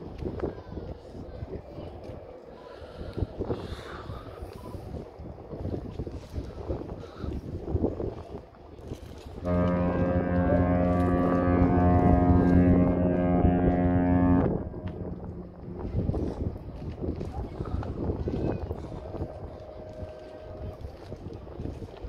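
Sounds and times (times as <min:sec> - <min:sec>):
wind buffeting microphone: 0:00.0 - 0:22.0
deep ship's horn blast: 0:09.2 - 0:22.0.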